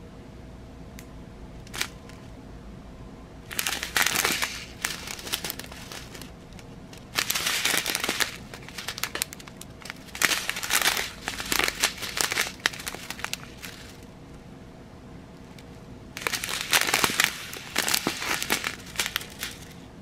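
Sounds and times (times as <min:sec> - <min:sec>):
plastic bag crinkling: 0:01.7 - 0:02.0, 0:03.5 - 0:14.1, 0:16.2 - 0:19.8
small beads clicking together: 0:03.5 - 0:06.3, 0:06.9 - 0:14.0, 0:16.2 - 0:19.7.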